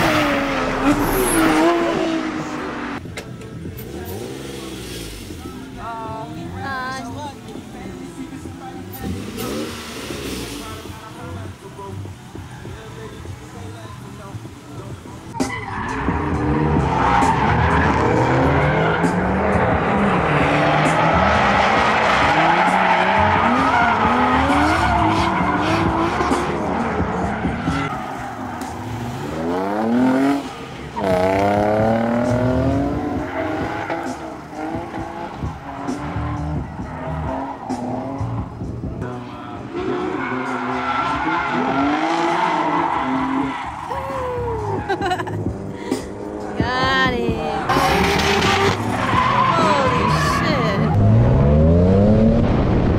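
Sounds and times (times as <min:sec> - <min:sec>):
car engine revving hard: 0:15.9 - 0:28.0, 0:28.6 - 0:38.8, 0:39.9 - 0:43.5, 0:47.7 - 0:52.9.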